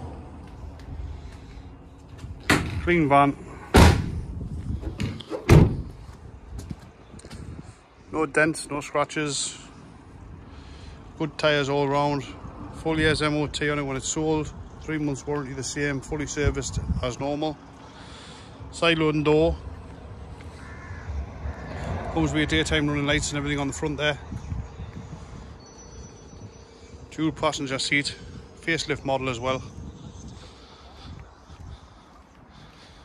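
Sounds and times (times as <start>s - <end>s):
van door slamming shut: 2.5s - 2.8s, 3.7s - 4.3s, 5.0s - 5.8s
faint distant bird call: 20.5s - 21.9s.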